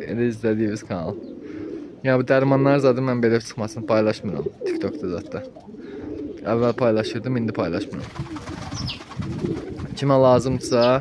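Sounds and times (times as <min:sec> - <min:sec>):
pigeons cooing: 0:00.6 - 0:02.0, 0:03.4 - 0:11.0.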